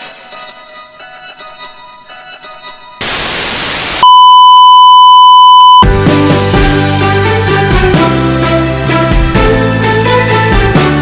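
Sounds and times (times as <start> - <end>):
music: 0.0 - 3.0, 5.8 - 11.0
television static hiss: 3.0 - 5.8
steady electronic beep: 3.0 - 5.9.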